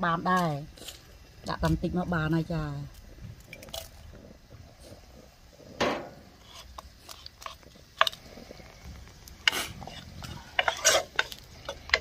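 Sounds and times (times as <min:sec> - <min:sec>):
dried chillies rustling in bowl: 0:00.1 - 0:04.1, 0:06.4 - 0:12.0.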